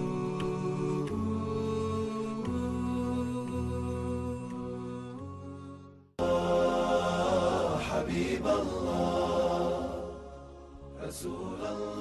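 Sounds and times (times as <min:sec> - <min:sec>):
chant-like vocal music: 0:00.0 - 0:12.0.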